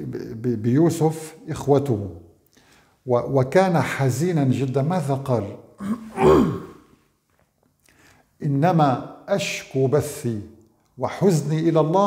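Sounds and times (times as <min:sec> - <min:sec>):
man sighing: 0:05.8 - 0:06.8.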